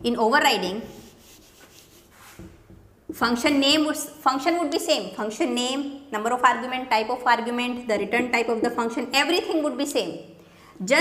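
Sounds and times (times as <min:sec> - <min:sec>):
eraser rubbing on whiteboard: 0:00.6 - 0:02.6.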